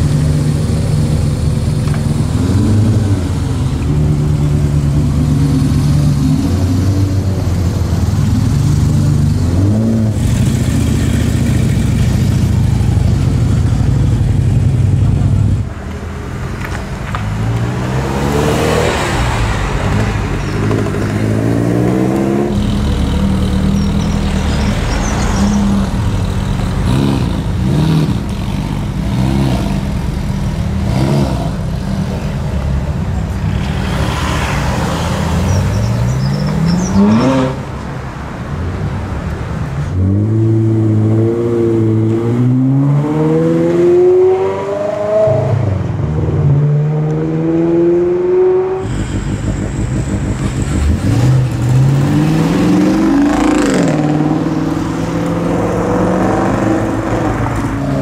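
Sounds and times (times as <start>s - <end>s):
car engine revving: 0.0s - 37.8s, 39.9s - 58.0s
engine idling with rev blips: 22.5s - 26.8s.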